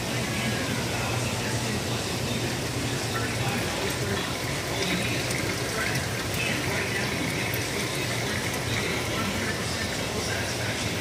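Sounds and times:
low pump hum: 0.0s - 11.0s
water flowing: 0.0s - 11.0s.

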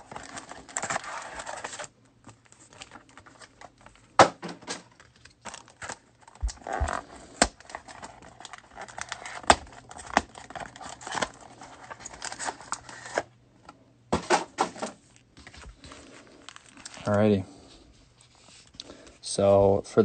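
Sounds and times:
plastic wrappers crinkling: 0.0s - 4.1s, 4.8s - 13.3s, 15.0s - 17.5s.

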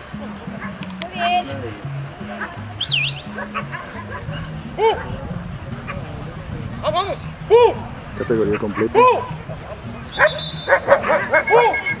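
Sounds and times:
dogs barking: 0.5s - 1.3s, 2.2s - 6.2s, 7.6s - 12.0s
high whistle-like tone: 2.8s - 3.3s, 10.1s - 12.0s.

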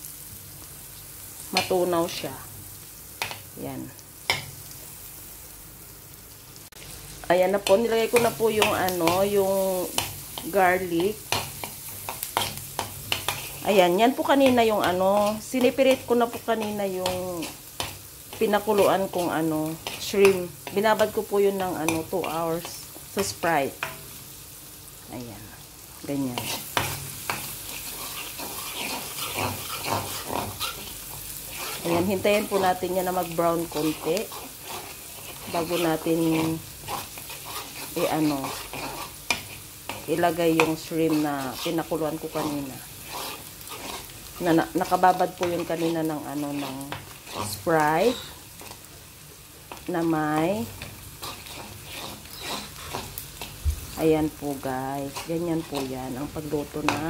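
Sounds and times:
garlic sizzling in butter: 0.0s - 57.0s
spatula scraping a wok: 7.6s - 24.2s, 26.3s - 48.9s, 49.6s - 57.0s
metal spoon stirring in pan: 7.6s - 24.3s, 26.3s - 48.9s, 49.6s - 57.0s.

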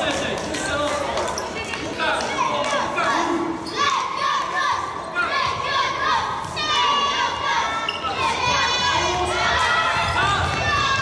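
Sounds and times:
people shouting in a hall: 2.0s - 11.0s.

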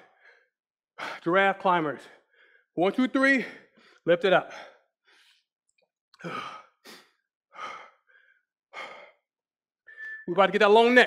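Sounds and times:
man breathing hard: 0.0s - 1.3s, 2.1s - 2.8s, 3.4s - 5.5s, 6.2s - 9.3s.

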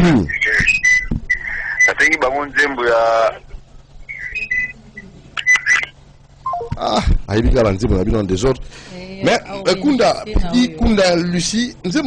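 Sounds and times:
faint low hum: 0.0s - 12.0s
brief high tones: 6.5s - 6.8s
person talking: 8.9s - 11.9s.

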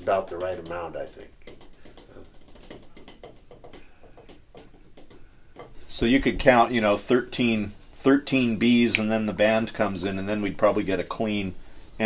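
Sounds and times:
faint clicks and taps: 0.0s - 5.8s.

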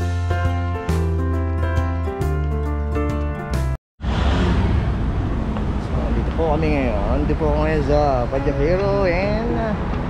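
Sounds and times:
road traffic rumble: 4.0s - 10.0s.

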